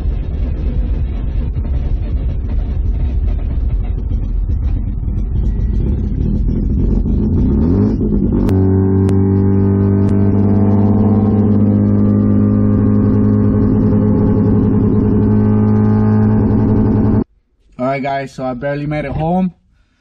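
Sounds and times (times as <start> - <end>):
car engine accelerating: 0.0 - 17.3.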